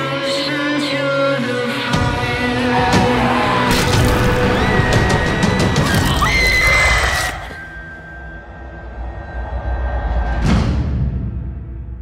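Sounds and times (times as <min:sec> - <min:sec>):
screeching horror score: 0:02.3 - 0:10.7
high shrill cry: 0:05.0 - 0:07.8.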